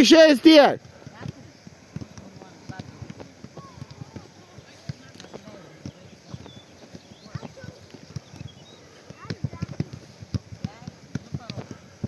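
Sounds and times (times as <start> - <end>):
footballs kicked thudding on grass: 0.5 - 12.0.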